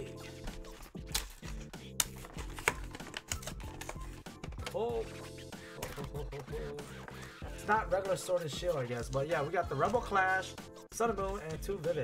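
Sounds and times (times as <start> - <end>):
background music with steady beat: 0.0 - 12.0
cardboard packaging clicks and crackles: 0.8 - 4.8.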